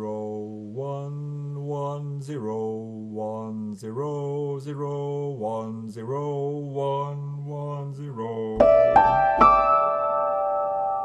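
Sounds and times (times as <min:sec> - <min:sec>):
man singing in chanting style: 0:00.0 - 0:08.7.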